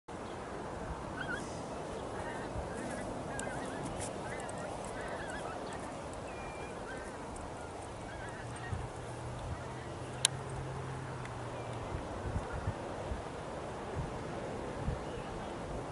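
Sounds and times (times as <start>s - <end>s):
rushing shoreline ambience: 0.1s - 15.9s
distant birds calling: 1.1s - 12.7s.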